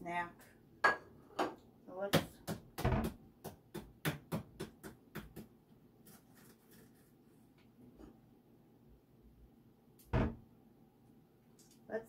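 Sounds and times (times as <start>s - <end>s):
egg tapped on cutting board: 2.1s - 5.5s.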